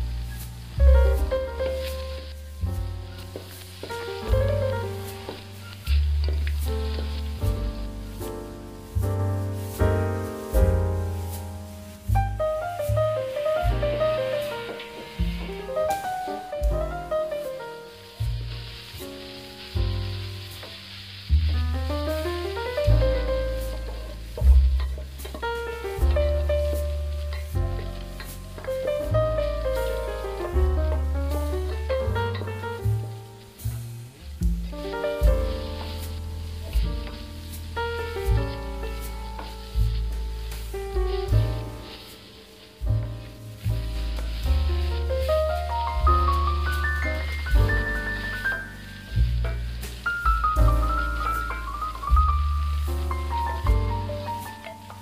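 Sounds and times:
rice frying in a wok: 0:00.0 - 0:55.0
wooden spatula stirring: 0:00.0 - 0:55.0
music with heavy bass: 0:42.8 - 0:55.0.

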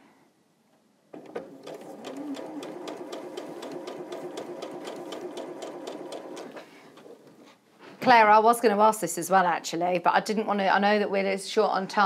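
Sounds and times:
sewing machine stitching: 0:01.2 - 0:07.2.

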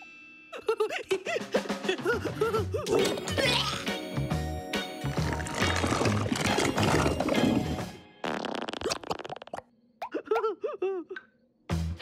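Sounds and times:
upbeat cartoon music: 0:01.5 - 0:09.4
bubbling squelching gurgle: 0:05.1 - 0:09.6.

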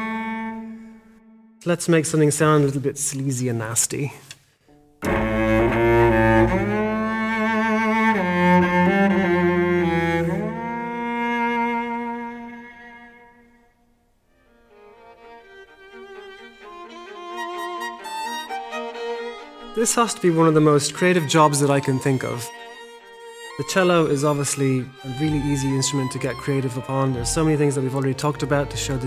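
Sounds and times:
cello glissando with vibrato: 0:00.0 - 0:01.6, 0:05.0 - 0:13.7, 0:14.6 - 0:29.0
quick high string playing: 0:05.0 - 0:07.2.

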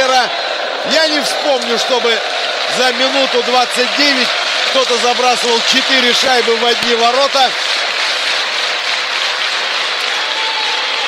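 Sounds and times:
arena crowd voices: 0:00.0 - 0:11.0
crowd clapping: 0:00.0 - 0:11.0.

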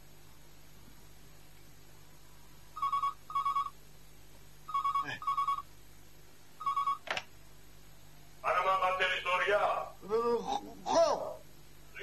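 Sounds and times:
telephone ringing electronic trill: 0:02.8 - 0:03.8, 0:04.7 - 0:05.7, 0:06.6 - 0:07.0.

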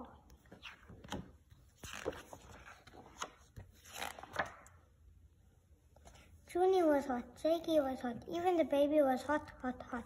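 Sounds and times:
book pages turning: 0:00.3 - 0:04.8
paper rustling and flapping: 0:00.5 - 0:04.8.

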